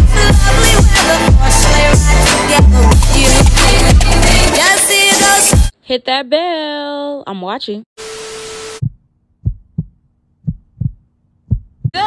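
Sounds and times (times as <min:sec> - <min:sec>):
heartbeat thumps: 0:08.8 - 0:12.0.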